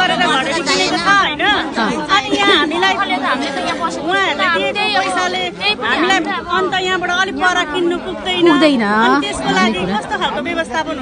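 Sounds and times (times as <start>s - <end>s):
people talking in a group: 0.0s - 11.0s.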